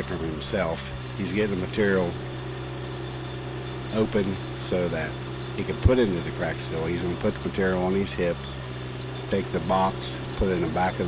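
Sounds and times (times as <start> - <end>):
machine engine idling: 0.0 - 11.0.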